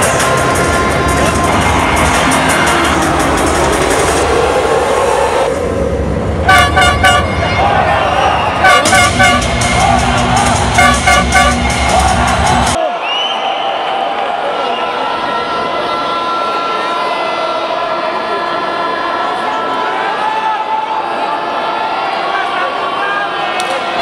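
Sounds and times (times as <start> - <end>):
music with steady beat: 0.0 - 4.6, 8.6 - 12.8
loud horn tooting: 6.4 - 12.3.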